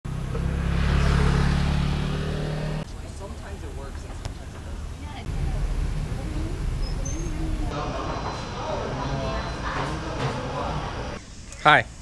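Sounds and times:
vehicle engine humming: 0.0 - 11.2
faint street voices: 2.8 - 12.0.

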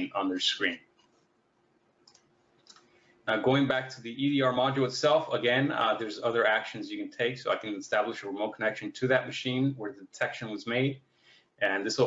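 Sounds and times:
faint computer mouse clicks: 2.0 - 2.9.

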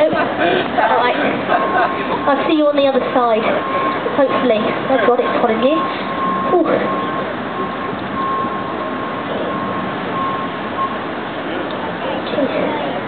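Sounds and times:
outdoor background noise: 0.0 - 13.0
faint high beep: 5.7 - 11.0.

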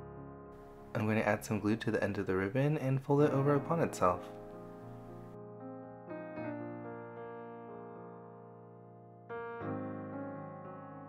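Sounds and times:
soft electric piano chords: 0.0 - 11.0.

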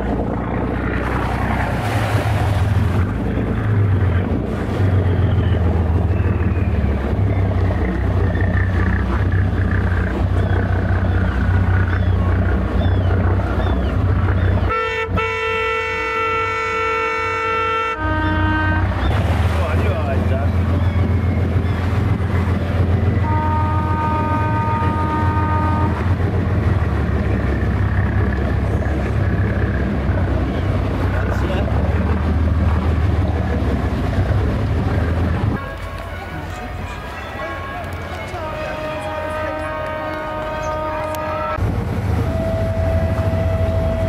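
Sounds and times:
steady low rumble: 0.0 - 14.7
boat horn blasts: 14.0 - 21.6, 22.4 - 26.6, 35.5 - 44.0.

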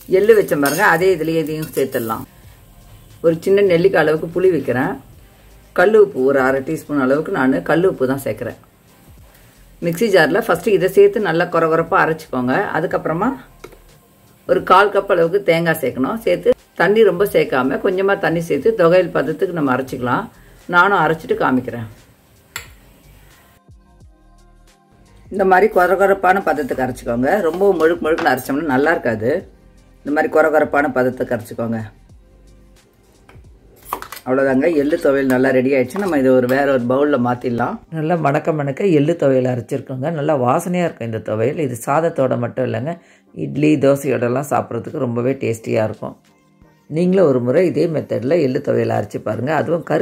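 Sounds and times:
metal spatula scraping a pan: 0.2 - 2.3
person talking: 25.3 - 31.9, 34.2 - 42.8.

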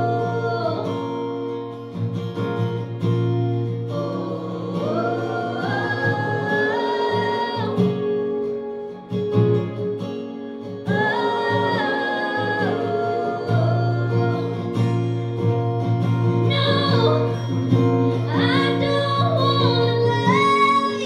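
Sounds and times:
strummed acoustic guitar: 0.0 - 21.0.

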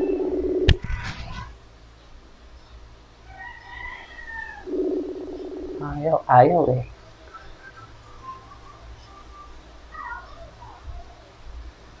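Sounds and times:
steady low hum: 0.0 - 12.0
faint animal calls: 3.3 - 11.4.

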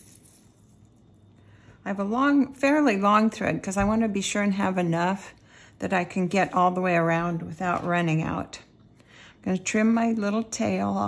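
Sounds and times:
woman speaking: 1.8 - 8.7, 9.4 - 11.0.

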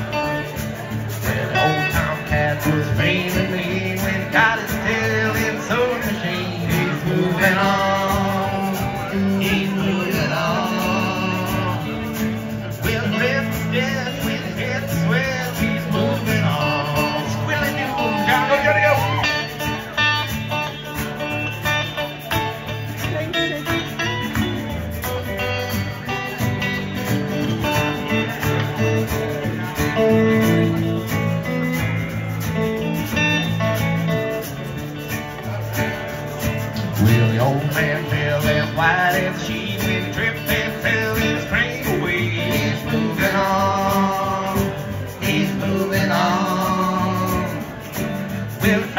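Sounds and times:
dobro and electric guitar leads: 0.0 - 48.9.

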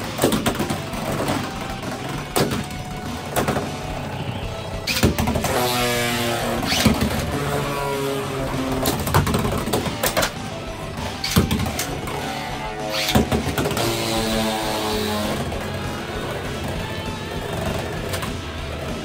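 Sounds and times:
tops clacking together: 0.0 - 4.1, 4.8 - 18.4
tops spinning on plastic: 0.0 - 19.0.

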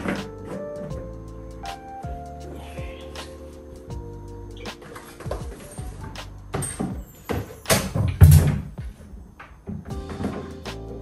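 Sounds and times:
background music: 0.0 - 9.0, 9.6 - 11.0.

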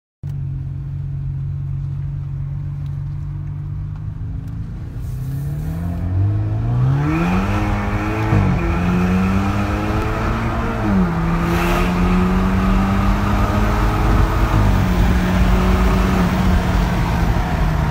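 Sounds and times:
car engine accelerating: 0.3 - 17.9.

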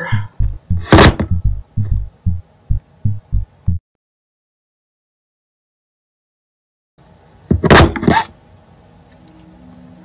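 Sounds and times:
rapid low thumping: 0.0 - 3.8.

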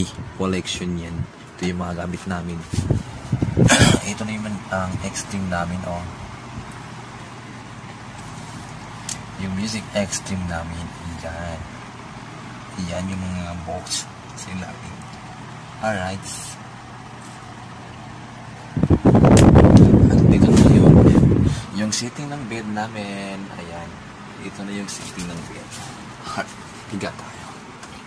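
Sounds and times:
low hum and hiss: 0.0 - 28.0.

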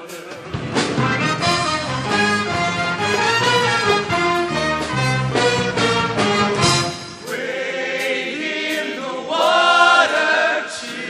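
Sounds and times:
choir singing in harmony: 0.0 - 11.0.

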